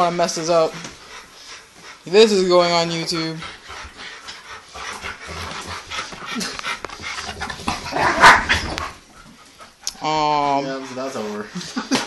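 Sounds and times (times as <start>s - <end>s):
dogs panting: 0.0s - 12.0s
dogs scuffling: 0.0s - 12.0s.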